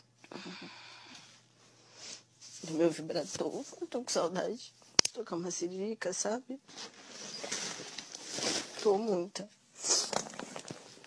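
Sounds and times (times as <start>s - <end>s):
woman speaking: 2.6s - 6.6s, 8.8s - 10.1s
cloth rustling on microphone: 6.6s - 9.1s.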